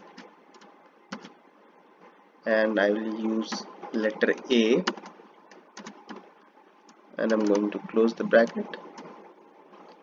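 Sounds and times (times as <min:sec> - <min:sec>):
low background hiss: 0:00.0 - 0:10.0
computer keyboard keystrokes: 0:00.1 - 0:01.4, 0:04.3 - 0:06.2, 0:06.9 - 0:07.8.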